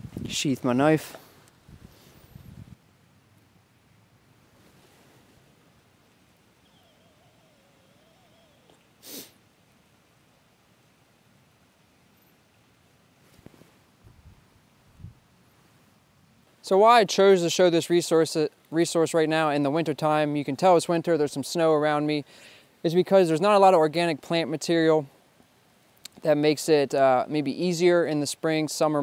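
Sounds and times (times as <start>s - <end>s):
soft rustle: 0.0s - 3.5s, 4.4s - 7.4s, 13.1s - 16.7s
sharp puff of breath: 9.0s - 9.4s, 22.3s - 22.7s.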